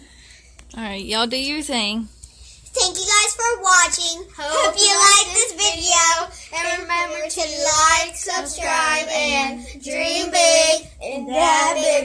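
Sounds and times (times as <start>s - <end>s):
children singing: 4.6s - 12.0s.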